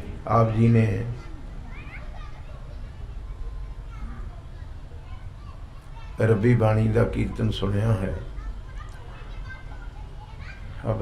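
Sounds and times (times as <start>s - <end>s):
children chattering and playing: 0.0s - 11.0s
steady low hum: 0.0s - 11.0s.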